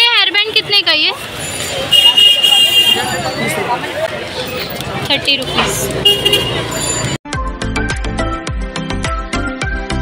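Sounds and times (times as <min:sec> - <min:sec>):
traffic: 0:00.0 - 0:07.2
voices: 0:00.0 - 0:07.2.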